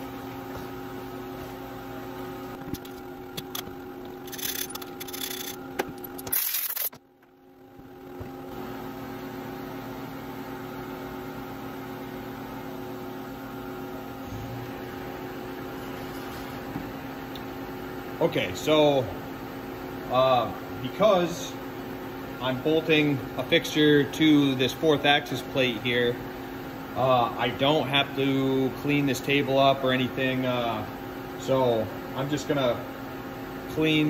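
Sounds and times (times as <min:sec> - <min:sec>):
steady machine hum: 0:00.0 - 0:34.0.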